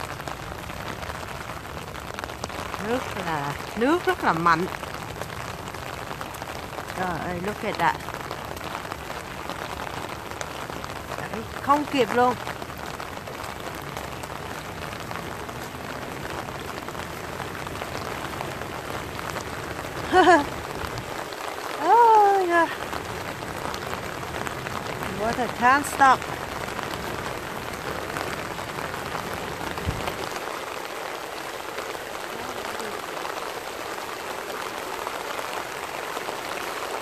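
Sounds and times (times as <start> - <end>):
heavy rain falling: 0.0 - 37.0
water rushing along a channel: 0.0 - 37.0.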